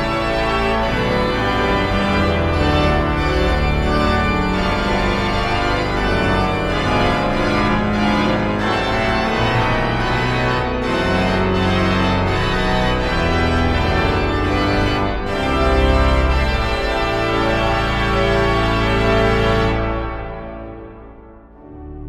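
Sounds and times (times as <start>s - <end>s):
pipe organ playing chords: 0.0s - 22.0s.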